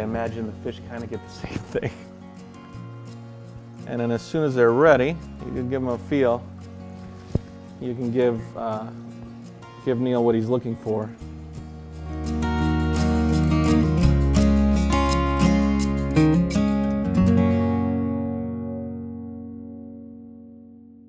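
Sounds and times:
strummed guitar chords: 0:00.0 - 0:21.0.

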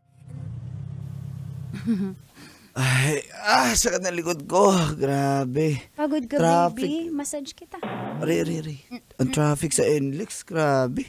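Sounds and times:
car engine running: 0:00.2 - 0:01.8.

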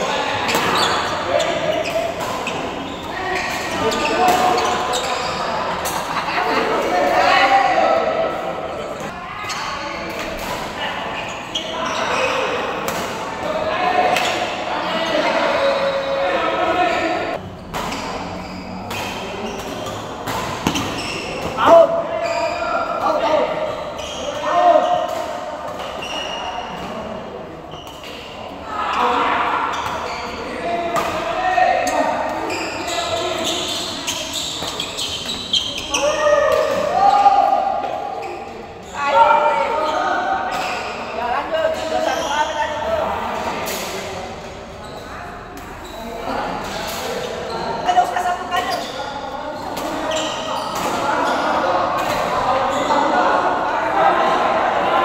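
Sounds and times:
shouting voices echoing: 0:00.0 - 0:17.4, 0:18.1 - 0:55.0.

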